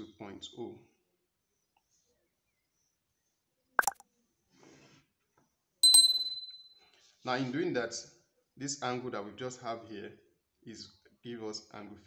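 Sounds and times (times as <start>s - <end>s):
high bell ding: 5.8s - 6.6s.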